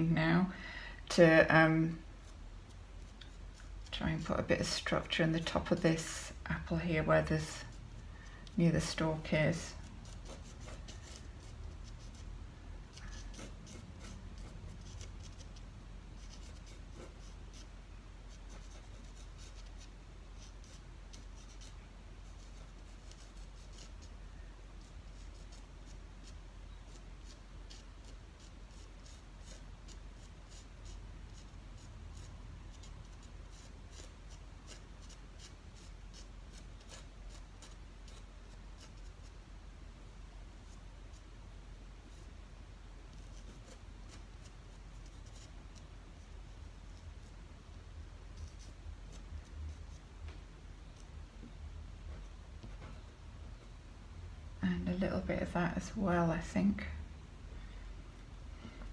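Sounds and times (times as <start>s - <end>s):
pastel scratching on paper: 8.8s - 12.3s, 12.9s - 17.7s, 18.3s - 24.2s, 24.8s - 39.4s, 43.1s - 45.9s.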